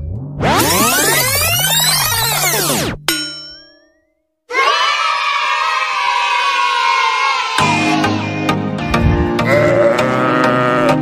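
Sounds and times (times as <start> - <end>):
bright ding: 3.0 - 4.2
children cheering and shouting: 4.5 - 8.5.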